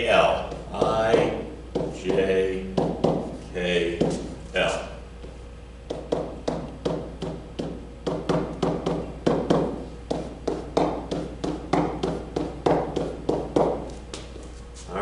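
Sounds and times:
pen tapping on whiteboard: 0:00.5 - 0:03.3, 0:05.2 - 0:14.2.

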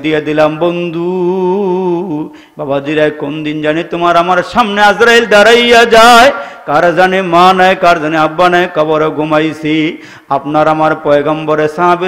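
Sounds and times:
man chanting sermon: 0:00.0 - 0:12.0.

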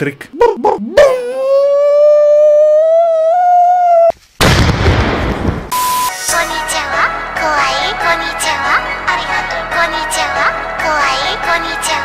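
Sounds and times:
man wailing in mock crying: 0:00.4 - 0:04.1.

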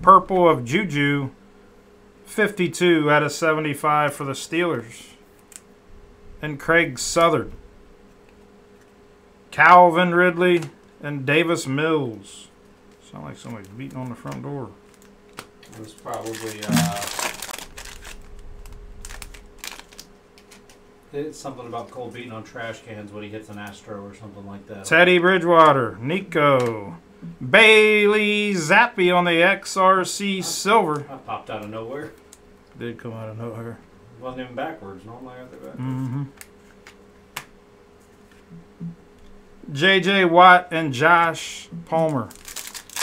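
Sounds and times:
card pack wrapper crinkling and tearing: 0:13.4 - 0:20.8, 0:42.0 - 0:43.0
closed-mouth hums: 0:16.5 - 0:17.4, 0:35.6 - 0:36.5, 0:38.4 - 0:39.8.

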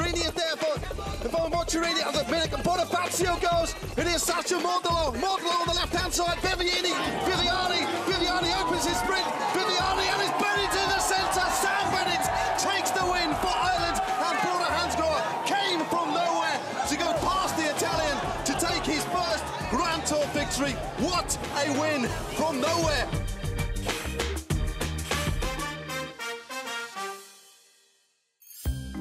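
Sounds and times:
music with thumping beat: 0:00.0 - 0:14.2, 0:17.2 - 0:25.8
person shouting sports commentary: 0:00.0 - 0:23.2.

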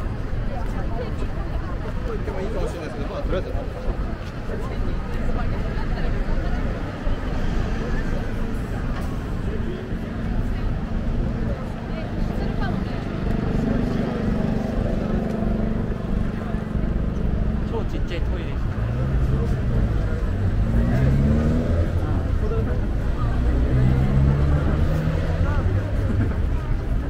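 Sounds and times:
pedestrians' voices: 0:00.0 - 0:27.0
vehicle engines droning: 0:00.0 - 0:27.0.

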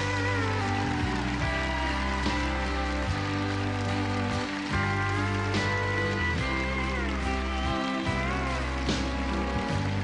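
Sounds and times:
acoustic and electric guitars: 0:00.0 - 0:10.0
live band playing instrumental: 0:00.0 - 0:10.0.

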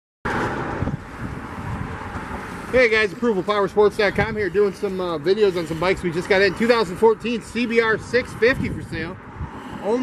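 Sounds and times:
wind buffeting microphone: 0:00.3 - 0:10.0.

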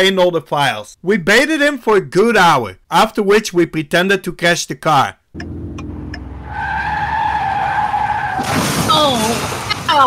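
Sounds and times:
car engine running: 0:05.4 - 0:07.4
tyres screeching: 0:05.4 - 0:09.2.

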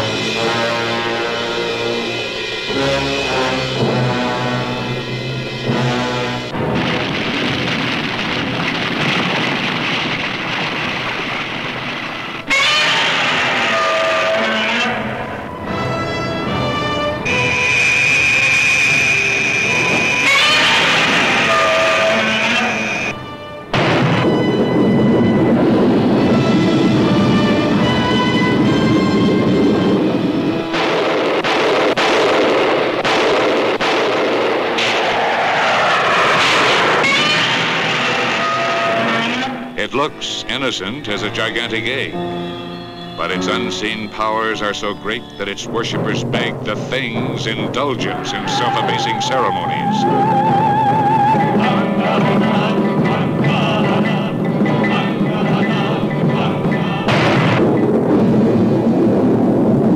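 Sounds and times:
jet aircraft noise: 0:00.0 - 0:32.0, 0:32.6 - 0:59.9
loud trailer music: 0:00.0 - 0:32.3, 0:48.3 - 0:59.9
explosions: 0:05.7 - 0:13.9, 0:17.3 - 0:23.1, 0:23.7 - 0:39.2, 0:57.0 - 0:59.9
gunfire: 0:06.5 - 0:13.7, 0:23.7 - 0:24.8, 0:30.7 - 0:38.6, 0:57.1 - 0:59.0
noisy sound effects: 0:16.5 - 0:34.0, 0:43.2 - 0:59.9
wavering high tones: 0:17.2 - 0:23.2.

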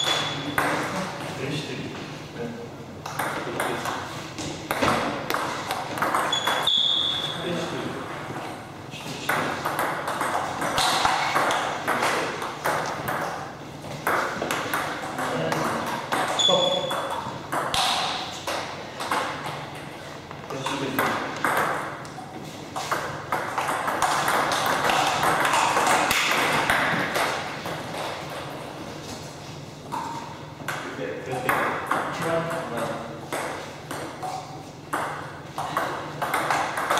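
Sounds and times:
table tennis balls clicking: 0:03.0 - 0:06.8, 0:09.3 - 0:28.8, 0:29.9 - 0:36.9.

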